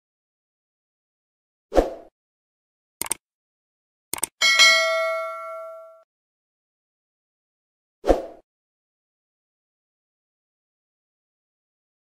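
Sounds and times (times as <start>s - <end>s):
bell-like ding: 4.4s - 6.0s.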